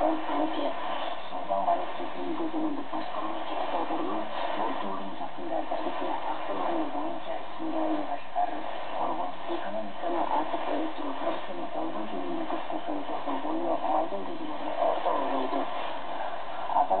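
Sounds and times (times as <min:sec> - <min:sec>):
radio background hiss: 0:00.0 - 0:17.0
radio speech: 0:00.0 - 0:17.0.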